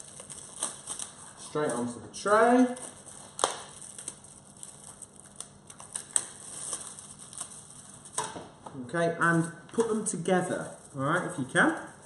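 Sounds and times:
kitchen foil rustling: 0:00.0 - 0:08.3, 0:09.9 - 0:12.0
plastic wrapping crinkling: 0:00.0 - 0:08.4, 0:09.3 - 0:12.0.

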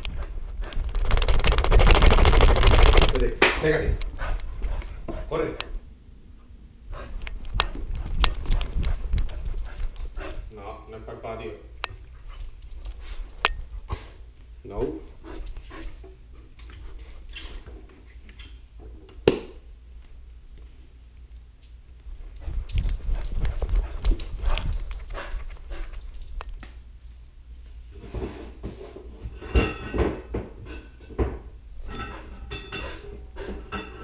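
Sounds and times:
dog claws clicking on floor: 0:00.0 - 0:05.0, 0:07.2 - 0:10.8, 0:11.8 - 0:13.8, 0:21.6 - 0:26.8
heavy rumbling on camera: 0:00.0 - 0:05.0
dog panting: 0:04.0 - 0:05.6, 0:06.9 - 0:10.6, 0:15.1 - 0:16.5, 0:22.4 - 0:26.2.

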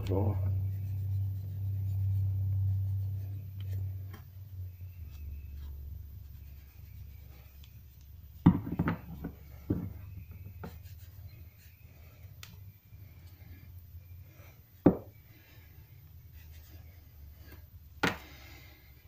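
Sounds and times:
cotton pad rubbing metal: 0:00.0 - 0:08.4, 0:09.1 - 0:12.3.

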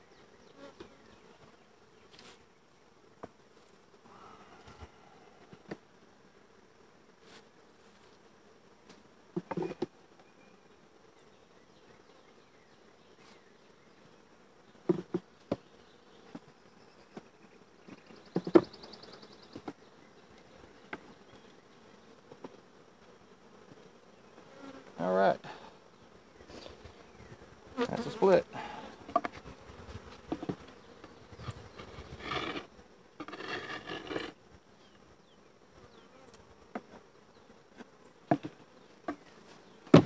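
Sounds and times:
honeybees buzzing: 0:00.0 - 0:40.0
wooden hive boxes knocking: 0:09.4 - 0:09.9, 0:14.8 - 0:15.7, 0:17.9 - 0:18.8, 0:29.0 - 0:29.4, 0:30.2 - 0:30.7, 0:38.2 - 0:39.3
wooden scrape: 0:31.4 - 0:34.4.

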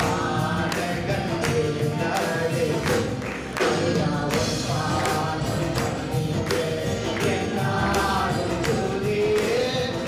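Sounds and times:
drum kit beat: 0:00.0 - 0:10.0
keyboards: 0:00.0 - 0:10.0
man singing into microphone: 0:00.0 - 0:10.0.

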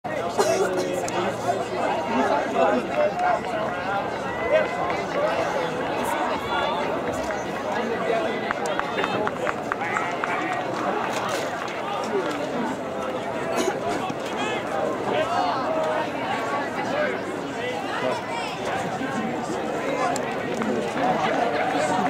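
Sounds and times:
babble of people talking: 0:00.0 - 0:22.0.

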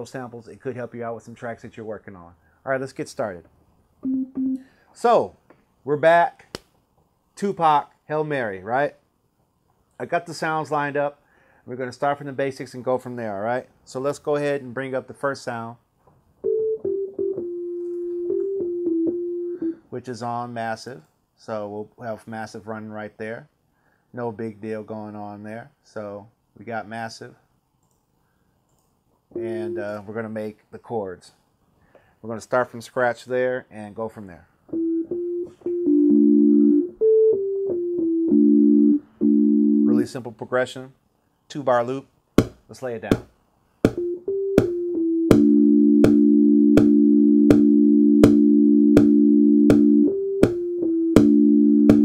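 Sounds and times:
synthesizer melody: 0:04.0 - 0:04.6, 0:16.4 - 0:19.8, 0:29.3 - 0:30.0, 0:34.7 - 0:40.2, 0:43.9 - 0:52.0.

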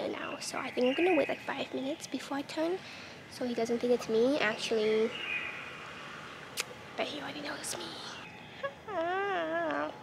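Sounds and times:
wavering whiny voiced sound: 0:07.9 - 0:10.0.

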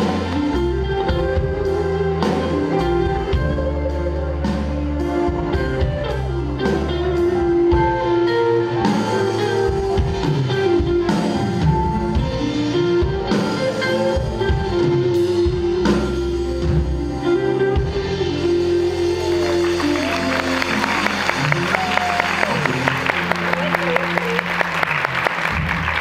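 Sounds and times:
live band playing: 0:00.0 - 0:26.0.

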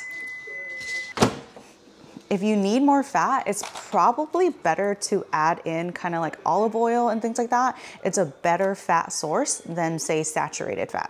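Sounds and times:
microwave oven beeping: 0:00.0 - 0:01.2.

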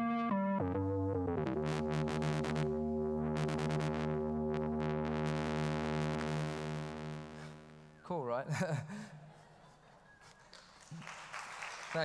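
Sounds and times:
audience applause: 0:10.5 - 0:12.0.

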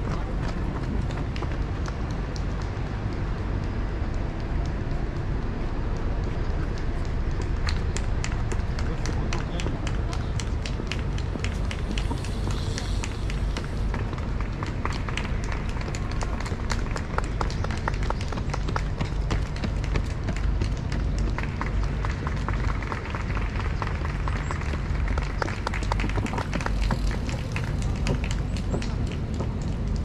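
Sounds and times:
steady low rumble: 0:00.0 - 0:30.0.

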